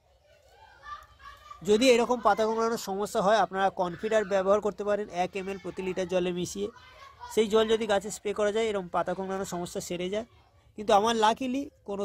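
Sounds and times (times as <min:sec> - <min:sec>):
faint children's voices: 0:00.0 - 0:12.0
man speaking: 0:01.6 - 0:06.7, 0:07.3 - 0:12.0.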